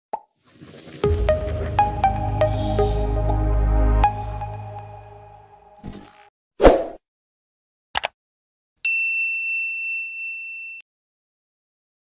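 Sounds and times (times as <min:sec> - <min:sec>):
rising swish: 0:00.4 - 0:05.4
deep bass hit: 0:01.0 - 0:05.4.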